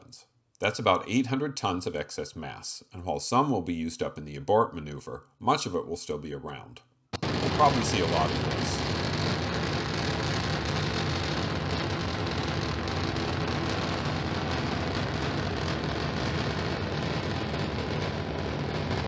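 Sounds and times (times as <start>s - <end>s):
rocket engines roaring: 7.2s - 19.0s.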